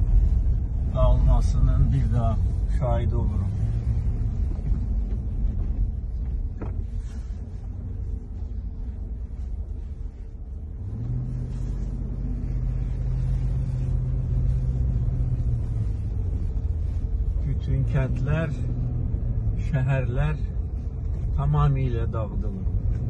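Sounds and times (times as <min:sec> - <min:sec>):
car cabin rumble on dirt road: 0:00.0 - 0:23.0
steady engine hum: 0:00.0 - 0:23.0.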